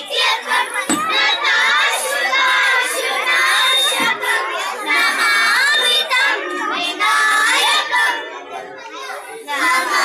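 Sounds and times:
children singing in unison: 0:00.0 - 0:10.0.

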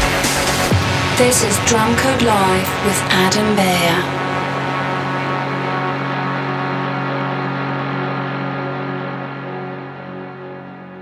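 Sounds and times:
sustained electronic chord: 0:00.0 - 0:11.0.

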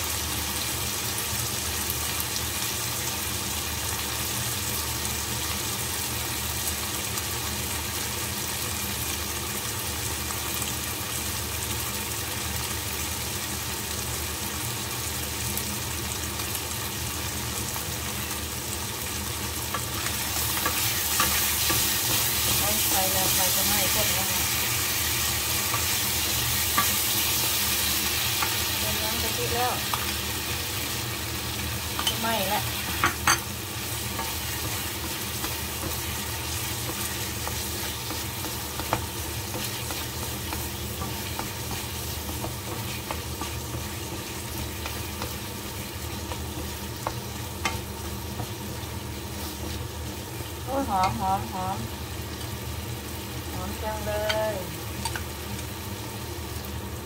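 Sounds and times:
meat sizzling in a pan: 0:00.0 - 0:57.0.

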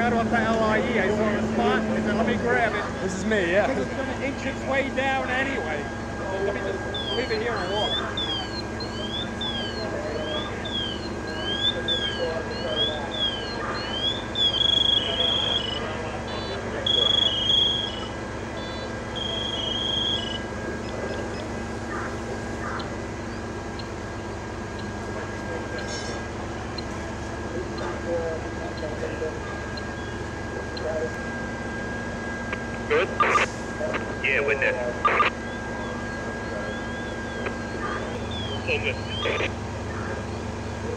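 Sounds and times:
faint high whine: 0:00.0 - 0:40.9
fire engine motor drone: 0:00.0 - 0:40.9
siren yelping: 0:00.0 - 0:40.9
siren high tone blasts: 0:04.3 - 0:40.6.

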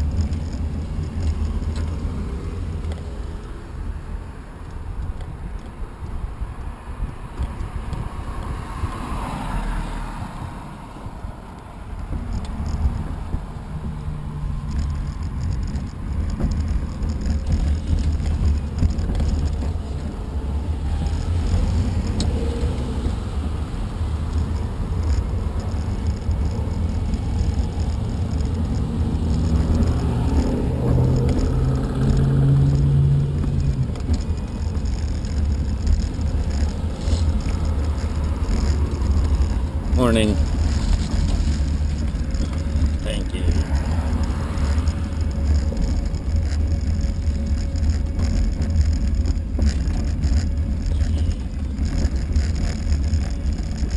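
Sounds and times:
vehicle low rumble: 0:00.0 - 0:53.9
wind noise: 0:00.0 - 0:53.9
low motor hum: 0:10.3 - 0:53.9.

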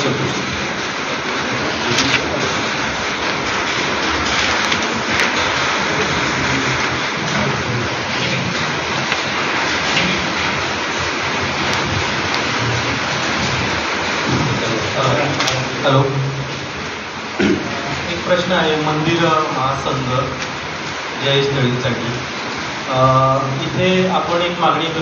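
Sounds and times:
heavy rain: 0:00.0 - 0:25.0.

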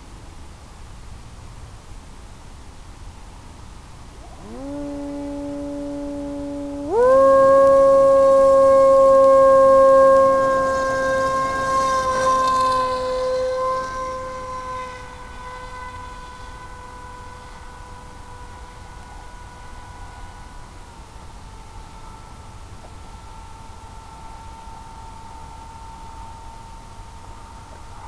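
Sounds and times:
propeller motor whine: 0:04.2 - 0:28.0.

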